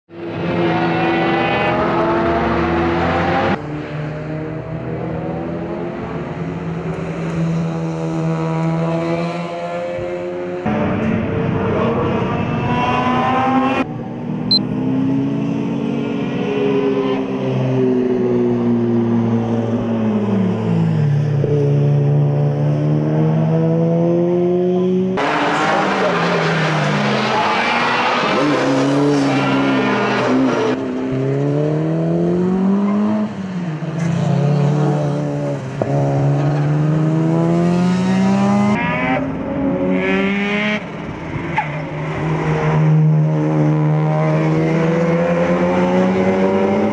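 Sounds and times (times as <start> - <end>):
car passing rushing noise: 25.2 - 31.0.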